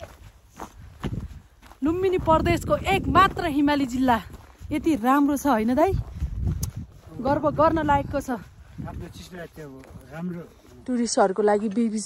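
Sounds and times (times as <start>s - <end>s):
soft footsteps walking: 0.0s - 12.0s.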